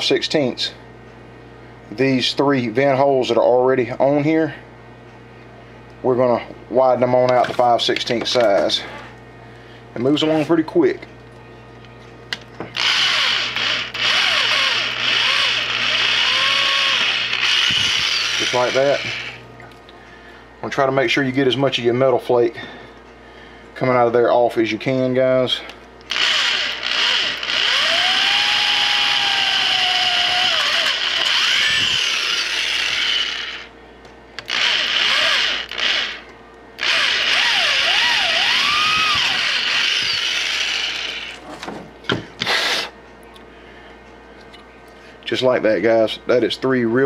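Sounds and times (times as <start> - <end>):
electric drill whining into metal: 12.8 - 19.4, 26.1 - 33.7, 34.4 - 41.4.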